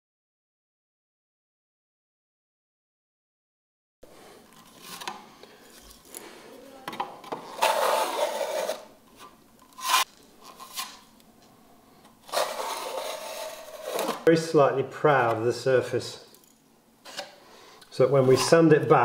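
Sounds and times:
trowel scraping plaster wall: 7.5s - 8.9s, 9.7s - 11.0s, 12.3s - 14.2s.

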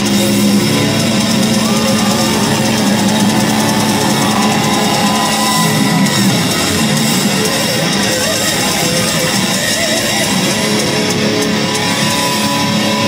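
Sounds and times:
distorted electric guitars: 0.0s - 13.0s
drum kit: 0.8s - 11.2s.

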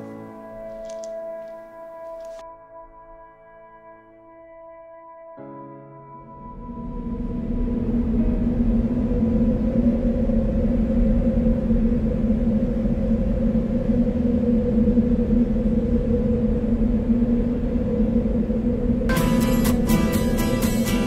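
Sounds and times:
low ambient drone music: 0.0s - 21.0s.

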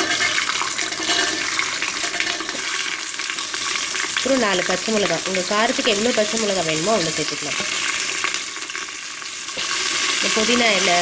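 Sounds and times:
shallots sizzling in hot oil: 0.0s - 11.0s.

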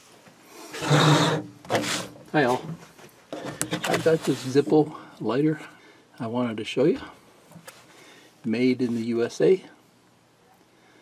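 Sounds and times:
plastic pack scraping on table: 0.8s - 2.2s, 3.3s - 4.6s.

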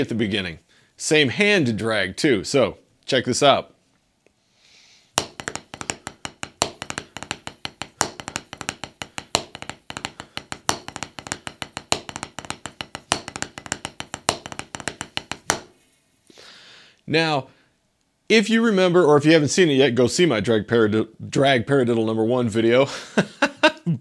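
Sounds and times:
drumsticks tapping practice pad: 5.2s - 15.8s.

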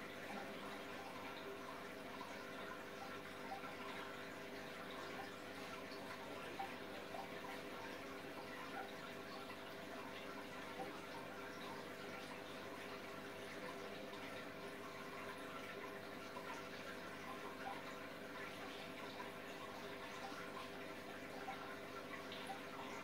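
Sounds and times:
water trickling in aquarium: 0.0s - 23.0s.

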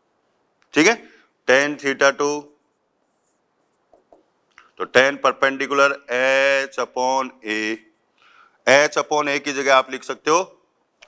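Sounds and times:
man speaking: 0.8s - 2.5s, 4.8s - 7.8s, 8.7s - 10.5s.

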